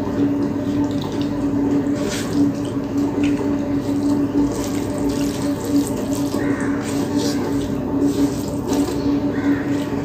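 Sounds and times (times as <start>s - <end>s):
fingers mixing rice wetly: 0.5s - 10.0s.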